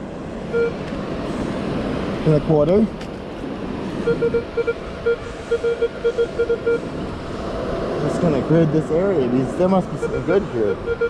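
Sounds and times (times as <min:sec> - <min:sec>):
wind: 0:00.0 - 0:11.0
surf rushing: 0:00.1 - 0:11.0
metal detector beep: 0:00.5 - 0:00.8, 0:04.1 - 0:06.8, 0:10.0 - 0:11.0.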